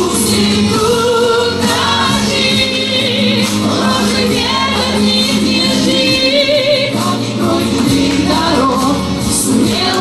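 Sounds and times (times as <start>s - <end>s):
group of voices singing in chorus: 0.0s - 10.0s
voice singing over microphone: 0.0s - 10.0s.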